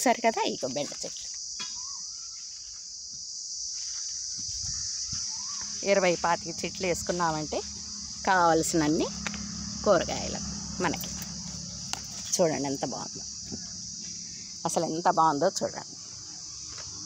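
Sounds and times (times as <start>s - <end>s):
insects chirring: 0.0s - 17.0s.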